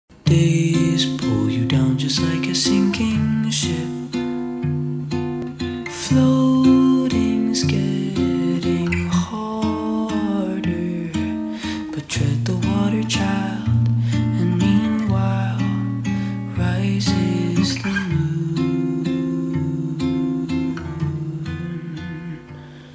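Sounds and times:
person singing: 0.1 - 4.4, 5.6 - 22.9
strummed acoustic guitar chords: 0.1 - 22.9.

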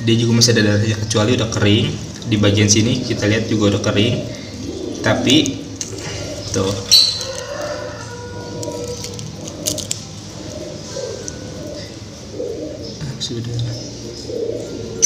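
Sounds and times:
pigeons cooing: 0.0 - 15.0.

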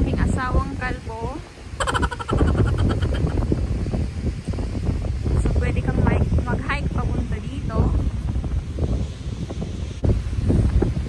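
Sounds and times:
wind buffeting microphone: 0.0 - 11.0
high-pitched voices calling out: 1.8 - 3.4.

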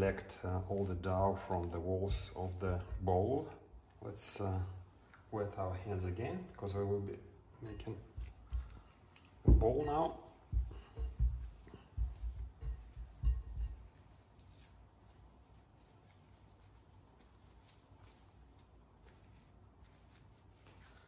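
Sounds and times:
hands kneading sticky dough: 0.0 - 4.6, 7.6 - 21.0.

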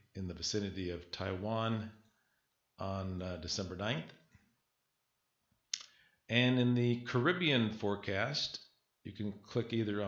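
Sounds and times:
man speaking: 0.0 - 2.0, 2.7 - 4.3, 5.7 - 10.0.

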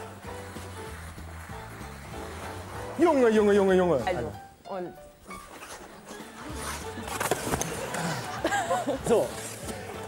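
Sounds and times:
ice skate blades scraping: 0.0 - 4.0, 5.4 - 8.4, 9.0 - 10.0
background music: 0.0 - 10.0
skater falling onto ice: 6.7 - 8.0.

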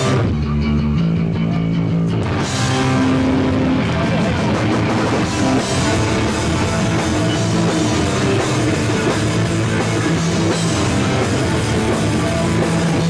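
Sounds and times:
bass chords: 0.0 - 13.0
distorted electric guitar: 0.0 - 13.0
drums and cymbals: 0.0 - 13.0.

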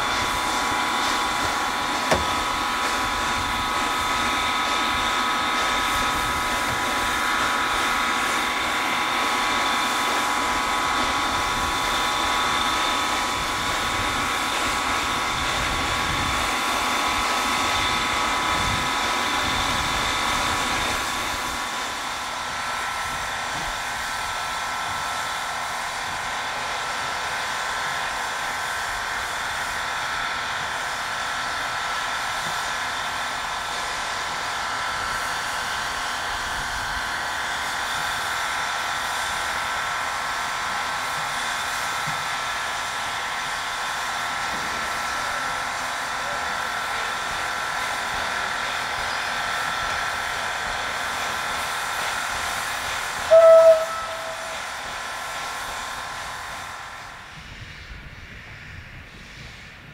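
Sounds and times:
steam locomotive hissing: 0.0 - 59.9
high-pitched whine: 53.3 - 55.0.

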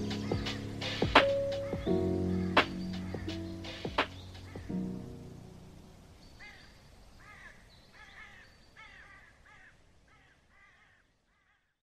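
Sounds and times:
bird calling: 0.0 - 5.2, 6.1 - 11.8.

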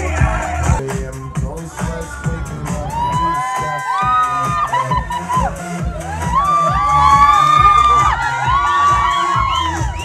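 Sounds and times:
crowd cheering and shouting: 0.0 - 10.0
dance music with bass beat: 0.0 - 10.0
high-pitched cries: 2.8 - 10.0.

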